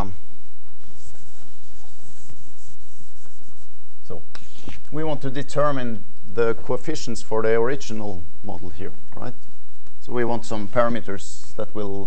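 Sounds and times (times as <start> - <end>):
chalk scratching on blackboard: 0.8 - 4.9.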